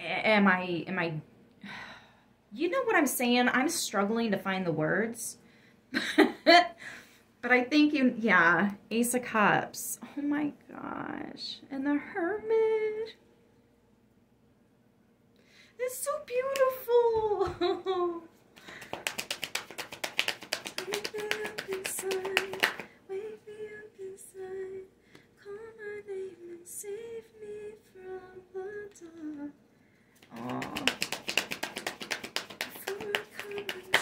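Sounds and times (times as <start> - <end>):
cards being shuffled: 18.7 - 22.8, 30.2 - 34.0.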